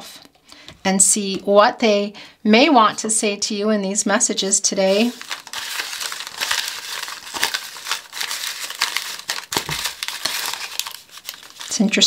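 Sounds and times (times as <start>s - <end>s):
paper envelopes rustling: 4.8s - 12.0s.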